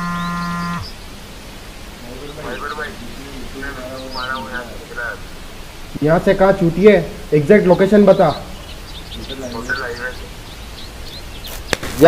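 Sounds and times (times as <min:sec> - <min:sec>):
buzzing tone dropping in pitch: 0:00.0 - 0:01.0
background noise: 0:00.0 - 0:12.0.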